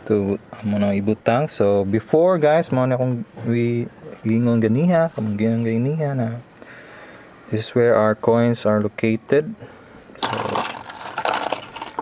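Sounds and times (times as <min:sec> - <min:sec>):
coins and keys jingling: 0:10.2 - 0:12.0.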